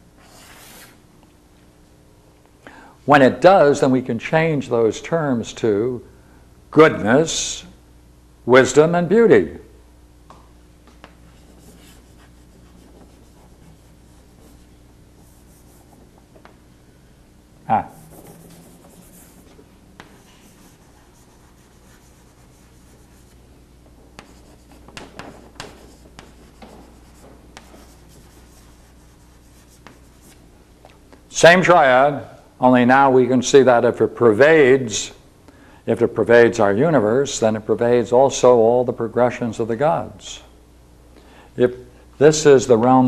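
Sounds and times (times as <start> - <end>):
faint steady hum: 0.0 - 43.0
chalk scratching on blackboard: 11.2 - 16.1, 17.8 - 23.4, 24.2 - 30.4
chalk tapping on blackboard: 17.9 - 23.4, 24.1 - 30.4.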